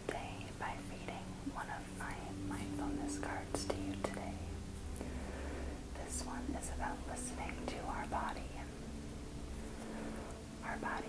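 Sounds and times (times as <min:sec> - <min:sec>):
person whispering: 0:00.0 - 0:04.5, 0:06.0 - 0:08.7, 0:10.6 - 0:11.0.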